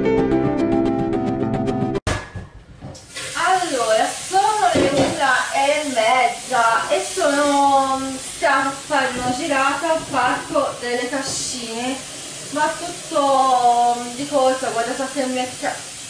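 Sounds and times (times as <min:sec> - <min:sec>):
background hiss: 0:03.0 - 0:16.0
woman talking: 0:03.4 - 0:15.8.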